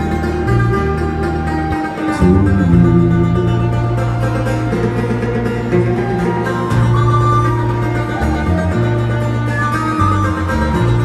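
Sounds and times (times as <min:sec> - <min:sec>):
acoustic guitar: 0:00.0 - 0:11.0
banjo: 0:00.0 - 0:11.0
electric bass guitar low notes: 0:00.0 - 0:11.0.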